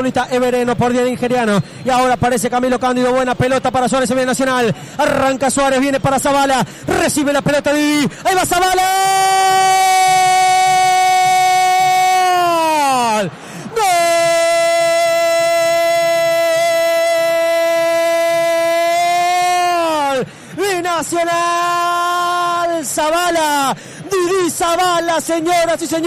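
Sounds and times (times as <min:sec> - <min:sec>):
man shouting goal cry: 0:05.0 - 0:26.0.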